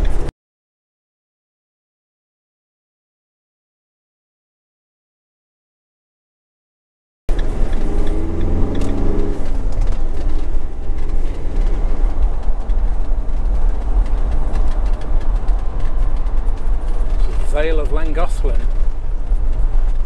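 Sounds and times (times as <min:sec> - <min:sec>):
low rumble of tyres and engine: 0:00.0 - 0:00.3, 0:07.3 - 0:20.0
engine note: 0:07.3 - 0:20.0.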